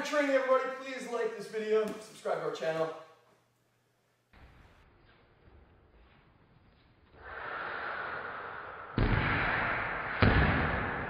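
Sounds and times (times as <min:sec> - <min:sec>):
heavy booming hits: 0:09.0 - 0:11.0.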